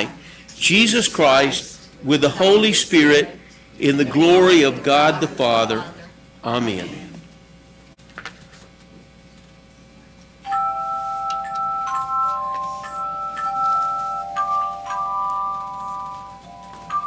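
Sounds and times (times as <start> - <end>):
handchimes playing a hymn: 10.4 - 17.0.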